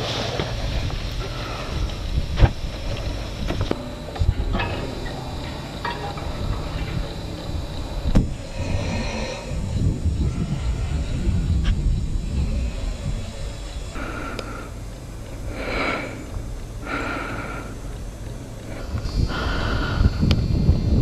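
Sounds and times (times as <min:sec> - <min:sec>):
wind rumbling on microphone: 0:00.0 - 0:21.0
sharp clicks: 0:13.4 - 0:20.5.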